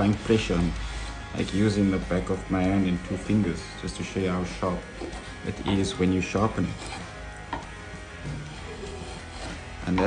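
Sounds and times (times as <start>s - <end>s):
background music: 0.0s - 10.0s
chisel scraping wood: 4.7s - 10.0s.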